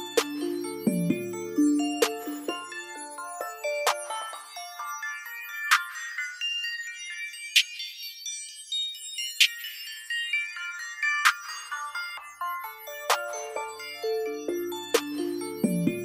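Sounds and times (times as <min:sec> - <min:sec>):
high melodic notes: 0:00.0 - 0:05.0, 0:13.0 - 0:16.0.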